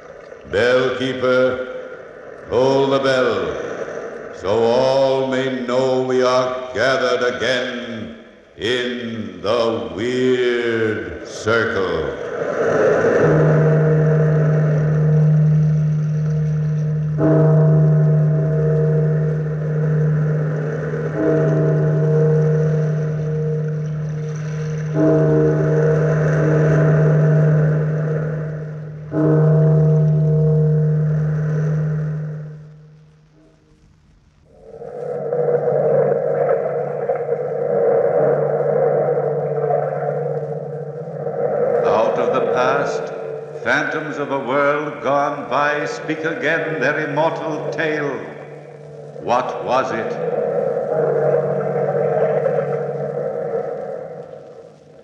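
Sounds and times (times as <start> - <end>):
steady sustained sound: 0.0 - 55.0
large bell tolling: 0.5 - 33.7, 38.1 - 54.7.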